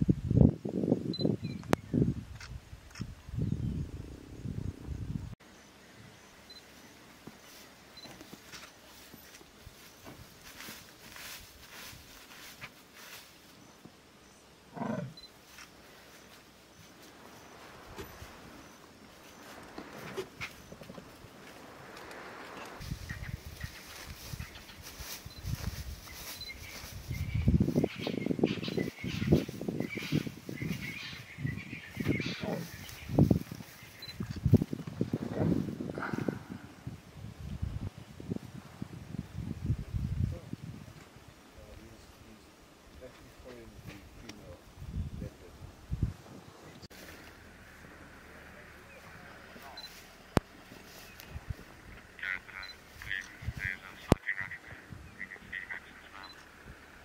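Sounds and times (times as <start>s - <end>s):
leopard grunting: 14.7s - 15.2s, 32.1s - 32.9s.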